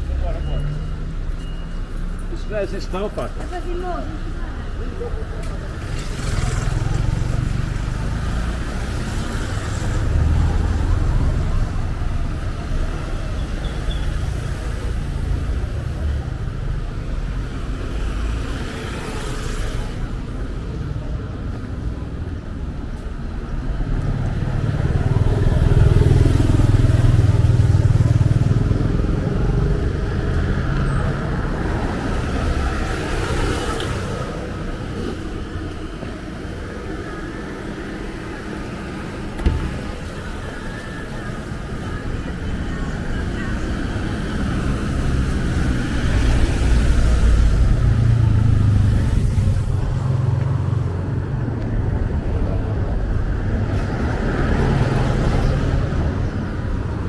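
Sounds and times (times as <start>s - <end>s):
cars passing: 0.0s - 57.0s
motorcycle passing close: 5.8s - 8.2s.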